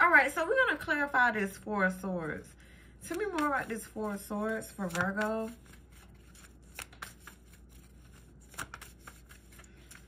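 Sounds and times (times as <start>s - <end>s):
cards being shuffled: 3.0s - 10.0s.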